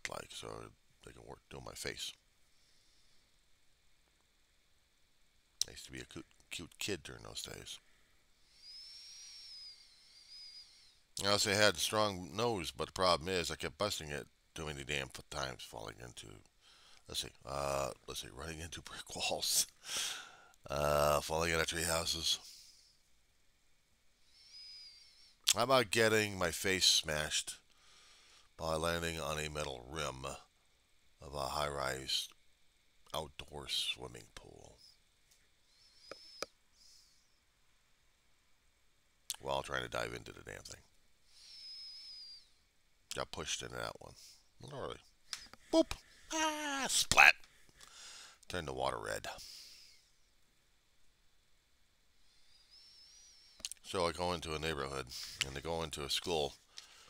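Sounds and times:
faint hiss: 0.0 - 57.0
faint high whistle-like tone: 8.4 - 11.1, 24.2 - 25.4, 35.6 - 37.4, 41.4 - 42.7
high wavering whistle: 8.5 - 11.0.

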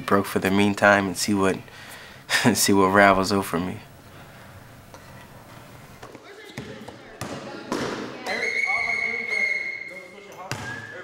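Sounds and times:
voices: 5.2 - 11.0
basketballs bouncing on gym floor: 6.0 - 8.4, 10.4 - 10.8.

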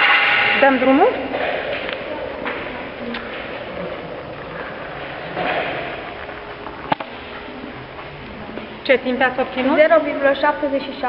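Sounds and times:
classroom background noise: 0.0 - 11.0.

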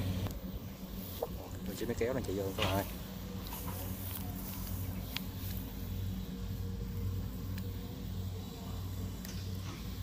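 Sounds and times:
farm machine engine hum: 0.0 - 10.0.

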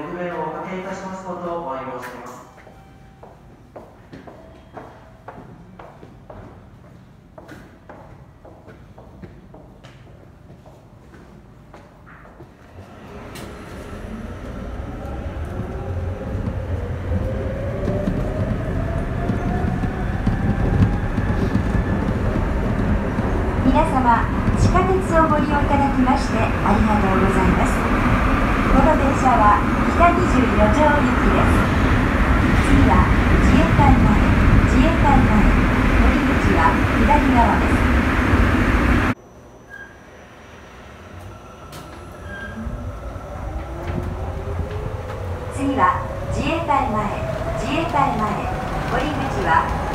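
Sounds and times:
subway train motor whine: 12.6 - 49.9
train running rumble: 12.7 - 39.2.

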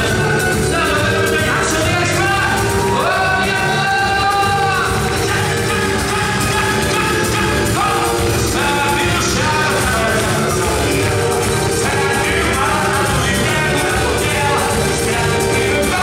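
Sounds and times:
live band playing samba music: 0.0 - 16.0.

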